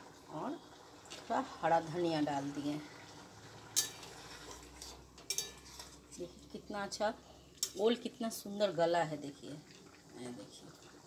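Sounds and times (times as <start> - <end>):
metal ladle clinking on pan: 3.8 - 4.2, 4.8 - 6.0, 7.6 - 7.8.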